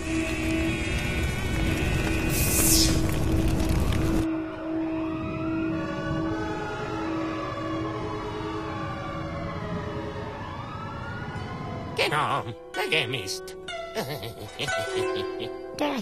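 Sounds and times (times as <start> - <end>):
emergency sirens wailing: 0.0 - 12.7.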